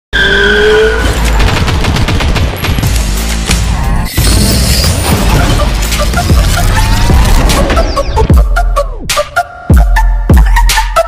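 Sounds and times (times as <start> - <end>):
rising squealing tone: 0.1 - 1.1.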